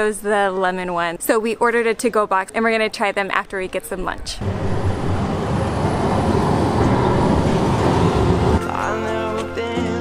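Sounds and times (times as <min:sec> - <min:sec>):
tram passing: 0:04.0 - 0:09.8
acoustic guitar music: 0:05.9 - 0:10.0.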